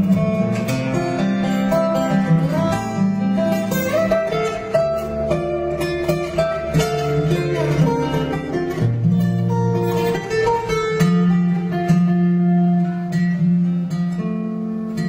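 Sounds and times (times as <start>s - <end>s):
fingerstyle acoustic guitar: 0.0s - 15.0s.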